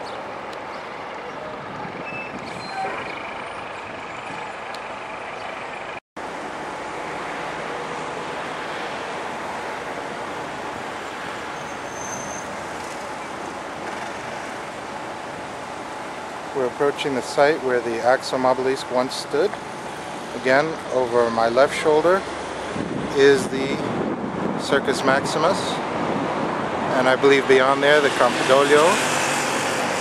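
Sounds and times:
city road traffic: 0:00.0 - 0:30.0.

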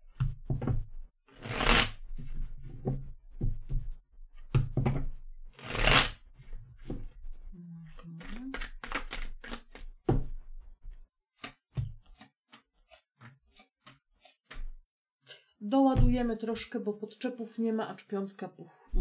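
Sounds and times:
cards being shuffled: 0:01.4 - 0:02.0, 0:05.6 - 0:06.2, 0:08.0 - 0:10.0
cards tapping and slapping: 0:08.3 - 0:10.2, 0:11.3 - 0:12.7.

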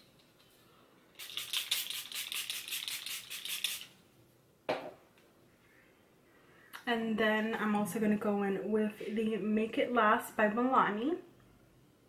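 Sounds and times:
pump spray bottle spritzes: 0:01.2 - 0:03.9.

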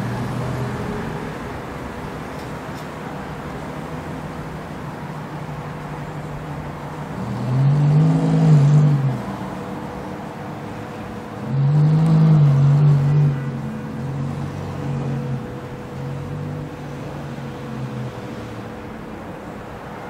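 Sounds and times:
car engine revving: 0:07.1 - 0:10.0, 0:10.9 - 0:19.0.

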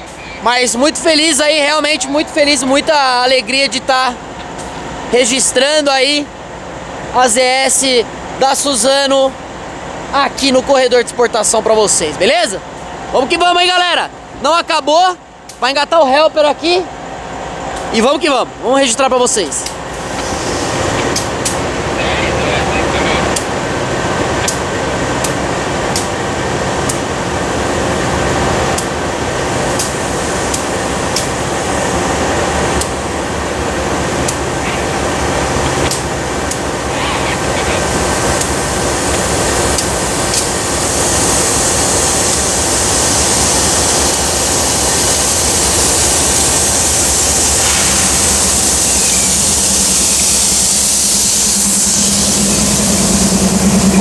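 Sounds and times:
locomotive engine drone: 0:00.0 - 0:54.0
steady hiss: 0:38.0 - 0:54.0.

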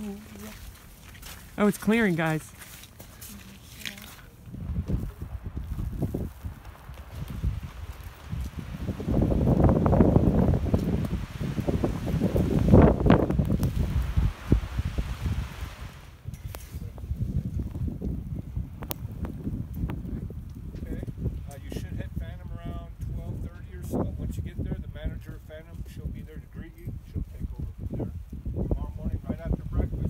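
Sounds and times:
wind buffeting microphone: 0:04.0 - 0:30.0.

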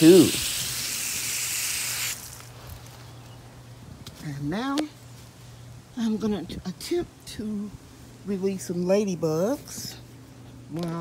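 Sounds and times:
hose spraying water on plants: 0:00.0 - 0:02.6.

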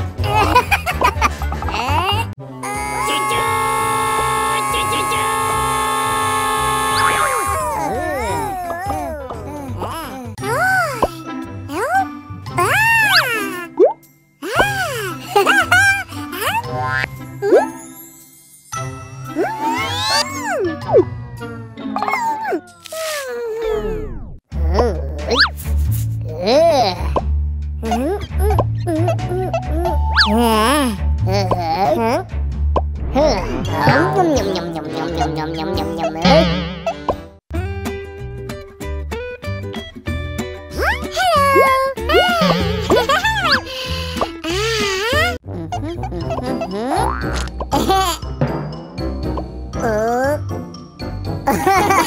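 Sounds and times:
light music with bass line: 0:00.0 - 0:03.4, 0:24.1 - 0:52.0
cartoon voice sounds: 0:01.9 - 0:11.1, 0:11.7 - 0:13.8, 0:19.4 - 0:20.8, 0:33.1 - 0:37.1, 0:40.8 - 0:43.7, 0:44.4 - 0:47.4
cartoon voice rising and falling: 0:02.8 - 0:09.2, 0:33.0 - 0:37.1.

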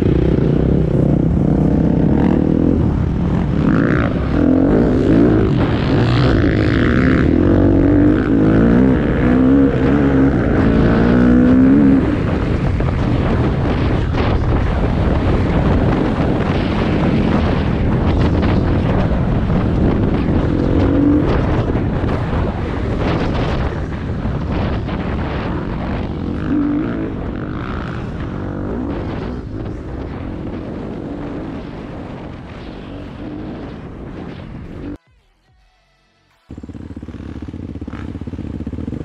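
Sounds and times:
dirt bike engine revving: 0:00.0 - 0:35.0, 0:36.5 - 0:39.0
wind buffeting microphone: 0:00.0 - 0:35.0.

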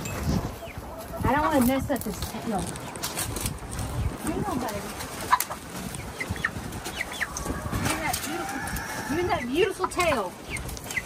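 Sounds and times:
chickens clucking and chirping: 0:00.0 - 0:11.0.

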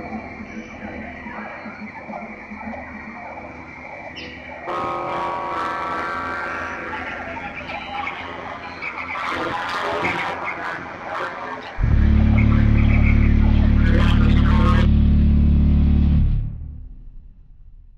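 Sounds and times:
cluttered sounds with pitched tones: 0:00.0 - 0:15.0
loud steady low hum: 0:11.8 - 0:17.4.

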